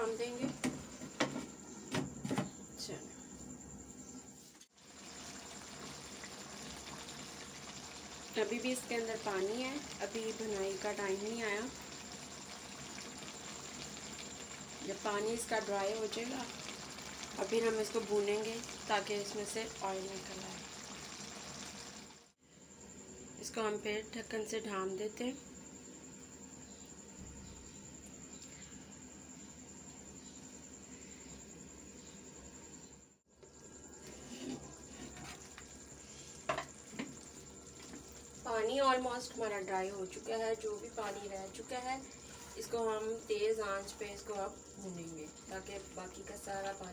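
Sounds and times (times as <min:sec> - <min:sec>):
curry bubbling in a pan: 0:04.8 - 0:22.4, 0:33.4 - 0:46.9.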